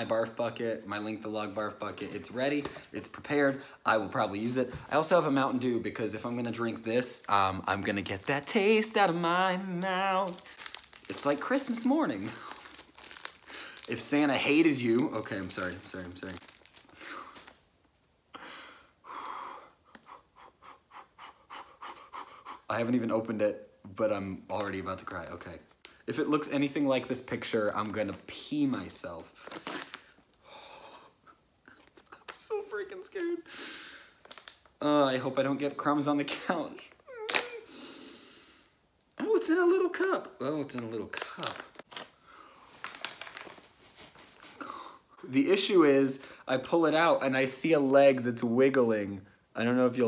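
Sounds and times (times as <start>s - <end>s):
foil and plastic cup crinkling: 7.7s - 17.6s, 34.2s - 34.7s, 40.6s - 44.5s
man breathing nervously: 18.3s - 22.7s.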